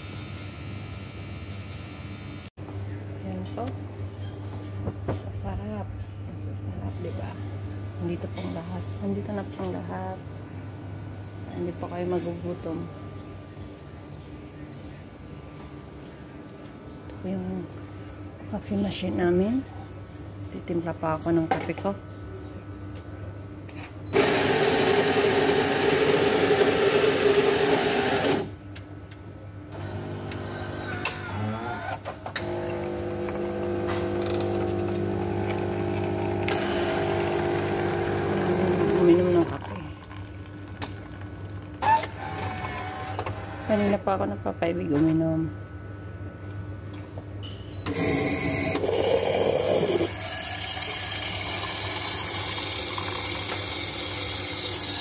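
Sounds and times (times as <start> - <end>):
low machine hum: 0.0 - 55.0
coffee machine grinding beans: 24.2 - 28.5, 29.8 - 31.7, 32.4 - 44.0, 47.9 - 55.0
pump humming: 32.4 - 43.7, 47.9 - 55.0.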